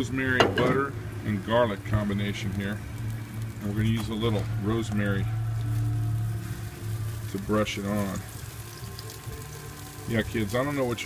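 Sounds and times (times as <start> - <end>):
steady low hum: 0.0 - 10.4
fat sizzling and crackling: 0.0 - 11.0.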